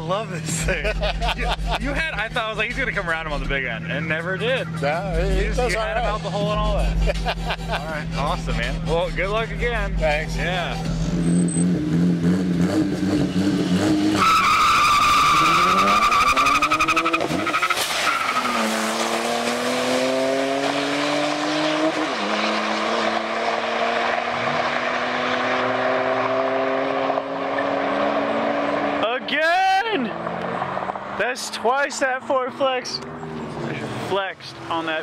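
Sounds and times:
car engines accelerating: 0:00.0 - 0:35.0
tires squealing: 0:01.9 - 0:35.0.

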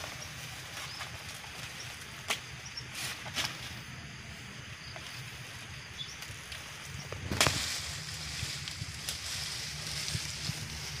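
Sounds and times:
dry leaves rustling: 0:00.0 - 0:04.1, 0:05.0 - 0:11.0
low steady rumble: 0:00.0 - 0:11.0
sharp crack of stalk: 0:07.2 - 0:07.8.

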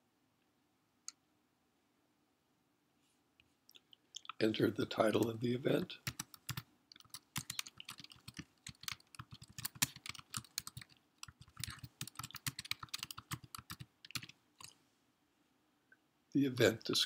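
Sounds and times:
computer keyboard typing: 0:06.0 - 0:14.8.

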